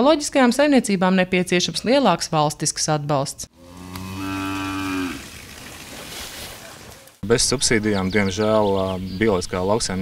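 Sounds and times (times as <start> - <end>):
cow mooing: 3.5 - 5.3.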